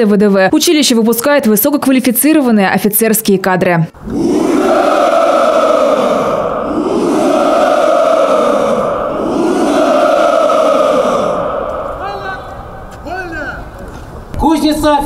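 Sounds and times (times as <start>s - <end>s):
crowd shouting in unison: 4.0s - 13.7s.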